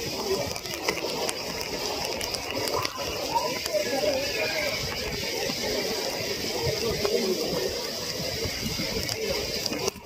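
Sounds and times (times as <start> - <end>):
steady rushing background: 0.0 - 10.0.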